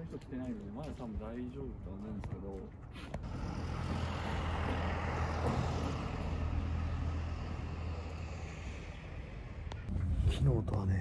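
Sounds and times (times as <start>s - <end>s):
road vehicle passing: 3.1s - 10.1s.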